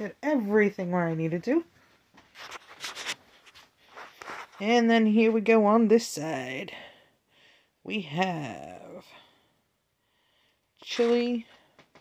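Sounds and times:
soft handling rustling: 0:00.3 - 0:05.4.

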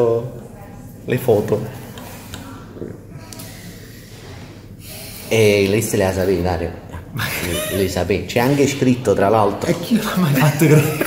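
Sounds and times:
person breathing softly: 0:02.0 - 0:05.4.

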